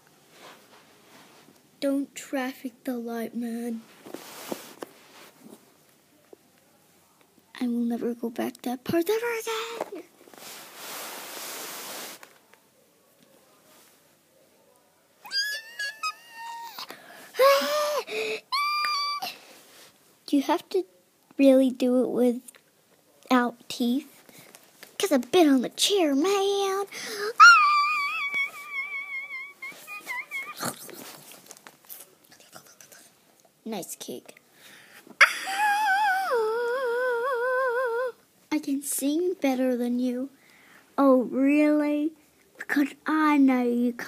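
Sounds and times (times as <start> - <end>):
microphone rubbing hiss: 3.8 - 5.8, 9.7 - 12.4, 27.4 - 33.2
faint taps and rustles: 3.9 - 7.4, 30.8 - 32.4
child singing high wavering note: 27.4 - 30.8, 35.2 - 38.2.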